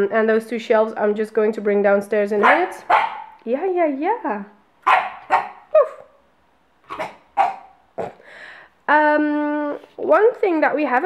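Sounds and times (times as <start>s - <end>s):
puppy barking: 2.4s - 3.4s, 4.8s - 6.1s, 6.9s - 8.2s.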